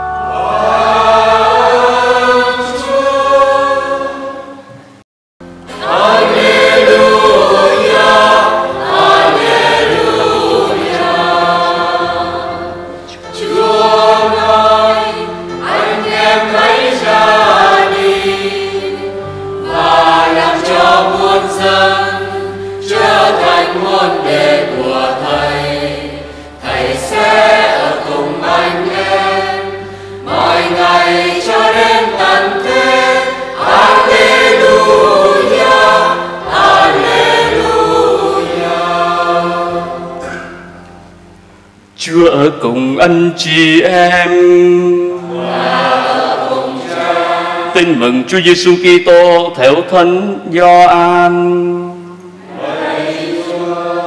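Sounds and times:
choir singing in parts: 0:00.0 - 0:54.0
electronic keyboard sustained notes: 0:00.0 - 0:54.0.

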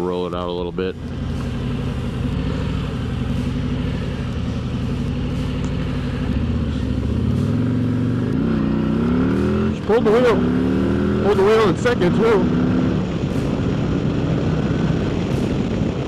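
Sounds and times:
motorcycle engine idling and revving: 0:00.0 - 0:16.0.

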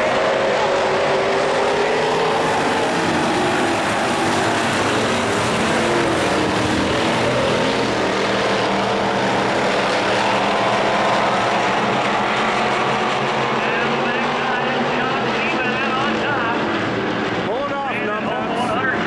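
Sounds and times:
race car engines: 0:00.0 - 0:19.0
voices: 0:13.6 - 0:16.7, 0:17.5 - 0:19.0.

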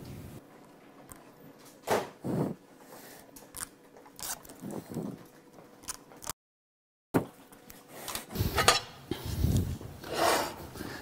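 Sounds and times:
tape liner peeling: 0:03.5 - 0:05.0.

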